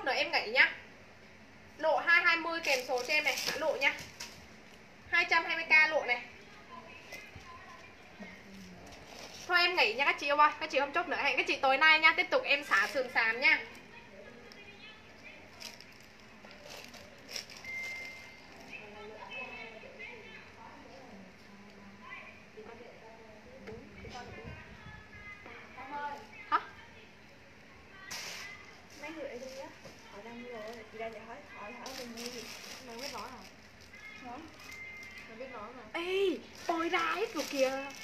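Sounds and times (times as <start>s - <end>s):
faint background voices: 5.9s - 10.8s, 12.4s - 38.0s.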